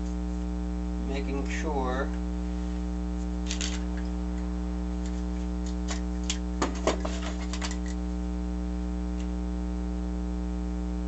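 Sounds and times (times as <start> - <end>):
mains hum: 0.0 - 11.0.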